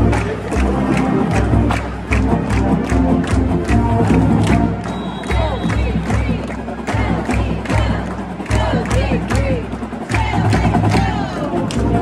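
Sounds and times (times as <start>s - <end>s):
held brass notes: 0.0s - 9.5s.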